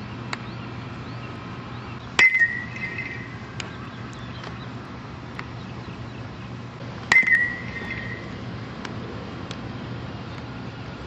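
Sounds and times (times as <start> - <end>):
metal bat hitting baseball: 2.2 - 3.3, 7.1 - 8.3.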